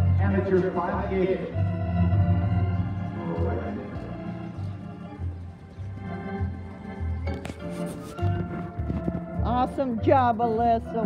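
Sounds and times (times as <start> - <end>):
organ music with pulsing bass: 0.0 - 11.0.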